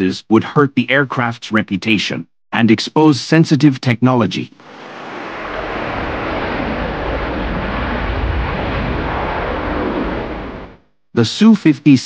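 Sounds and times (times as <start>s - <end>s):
fighter jet engines roaring: 4.6s - 10.8s.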